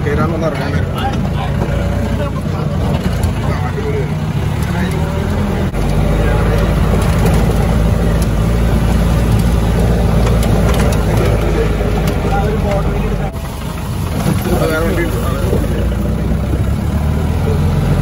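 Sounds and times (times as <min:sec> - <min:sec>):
engine running under load: 0:00.0 - 0:18.0.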